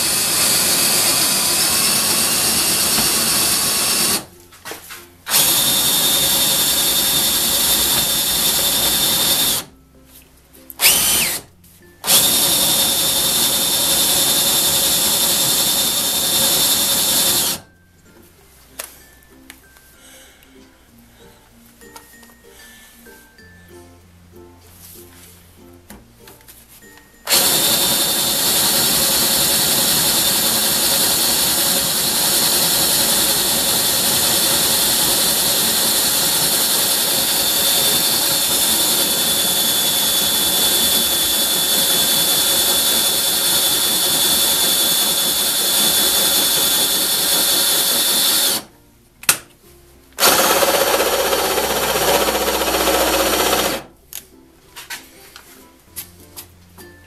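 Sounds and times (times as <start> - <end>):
drill boring into steel: 0.0 - 4.3, 5.3 - 9.7, 10.8 - 17.7, 27.3 - 48.7, 50.2 - 53.9.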